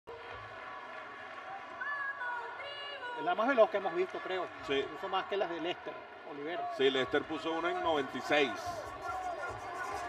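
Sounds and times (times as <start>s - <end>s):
ballpark crowd: 0.1s - 10.0s.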